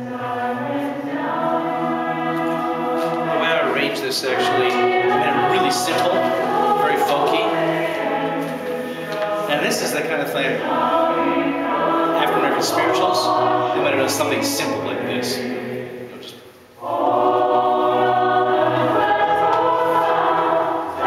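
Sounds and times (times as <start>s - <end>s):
group singing unaccompanied: 0.0s - 21.0s.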